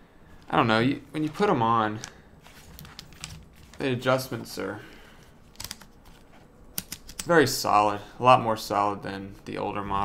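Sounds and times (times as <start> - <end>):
headphone headband adjusters clicking: 5.4 - 7.3.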